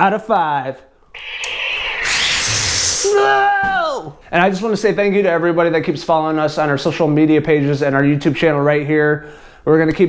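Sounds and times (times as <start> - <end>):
low hum: 1.1 - 3.2
lightsaber ignition hiss and rush: 1.2 - 3.3.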